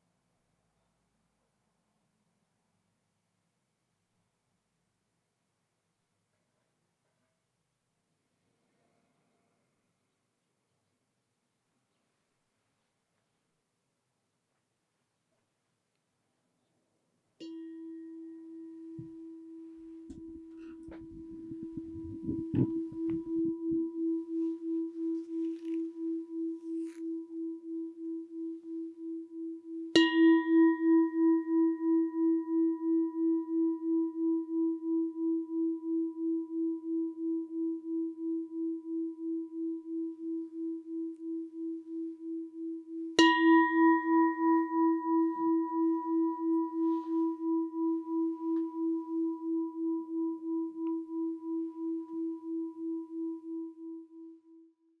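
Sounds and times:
singing bowl ringing: 0:17.4 - 0:54.7.

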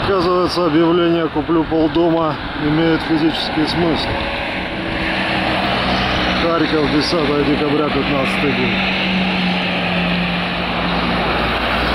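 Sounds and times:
vehicle engine drone: 0:00.0 - 0:11.9.

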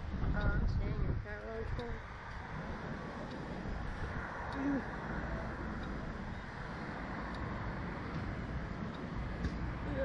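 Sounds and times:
wind buffeting the microphone: 0:00.0 - 0:10.0.

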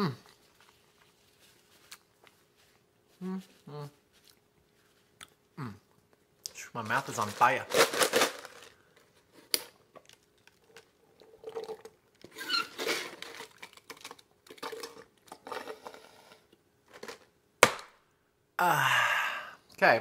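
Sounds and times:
person gulping drink: 0:10.1 - 0:12.2
loud sigh: 0:18.6 - 0:19.7.

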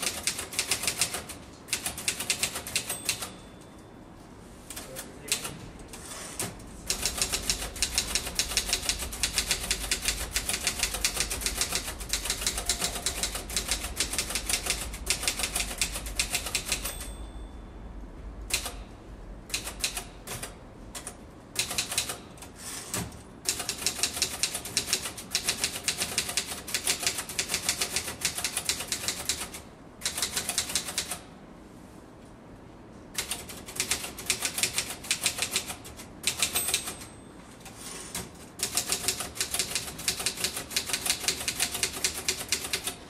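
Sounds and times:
rapid keyboard typing: 0:00.0 - 0:03.3, 0:04.7 - 0:05.5, 0:06.9 - 0:17.1, 0:18.5 - 0:18.8, 0:19.5 - 0:22.5, 0:23.5 - 0:31.2, 0:33.2 - 0:37.1, 0:38.2 - 0:43.0.

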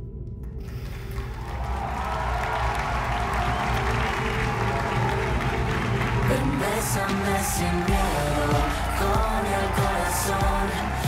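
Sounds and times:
audience applause and cheering: 0:00.6 - 0:11.0
music with low held notes: 0:03.0 - 0:11.0.

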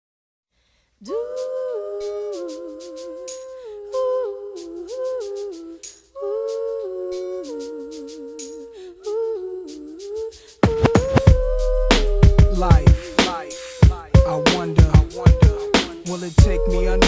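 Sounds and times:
person humming a slow melody: 0:01.0 - 0:17.0.

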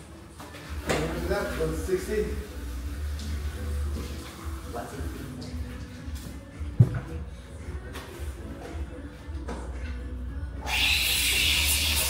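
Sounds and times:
steam wand hissing: 0:10.7 - 0:12.0.

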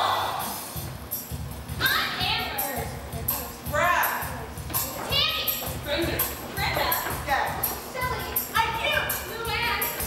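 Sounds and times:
young performers calling out: 0:00.0 - 0:00.7
music track with low beat: 0:00.0 - 0:10.0.

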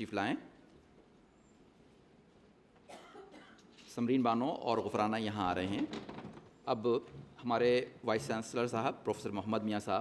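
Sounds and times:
faint cough: 0:02.8 - 0:03.7.

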